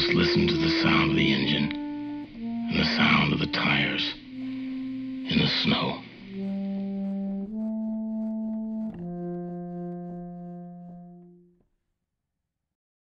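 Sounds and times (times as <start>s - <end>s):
long held musical chords: 0.0s - 11.6s.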